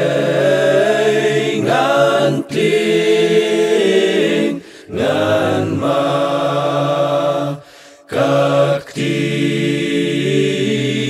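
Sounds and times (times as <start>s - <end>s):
male choir singing a hymn: 0.0s - 11.0s.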